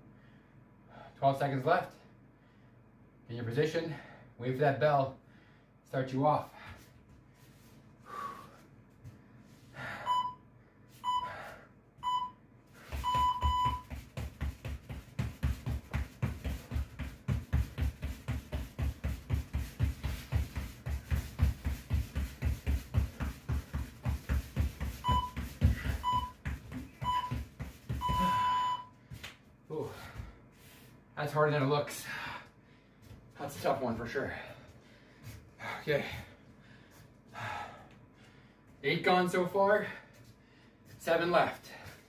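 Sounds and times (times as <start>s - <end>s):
interval timer beeps: 10.0s - 10.4s, 12.0s - 12.4s, 13.0s - 13.9s, 25.0s - 26.4s, 27.0s - 27.4s, 28.0s - 28.9s
rapid footfalls on floor: 12.8s - 30.4s.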